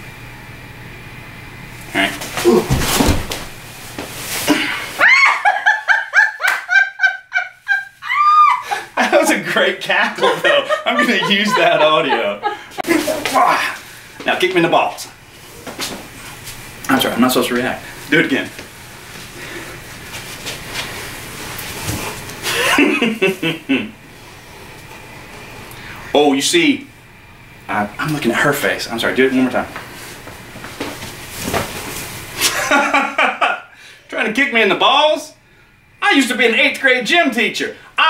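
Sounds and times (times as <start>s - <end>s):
rustling scuffle: 2.0s - 5.1s, 12.8s - 14.0s, 15.5s - 16.6s, 18.4s - 22.6s, 29.7s - 32.4s
person laughing high-pitched: 4.5s - 9.3s, 10.2s - 13.7s.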